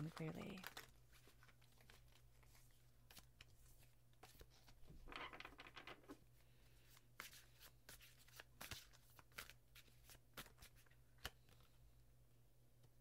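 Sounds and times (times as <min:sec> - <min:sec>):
cards being shuffled: 0:00.0 - 0:06.2, 0:06.8 - 0:11.8.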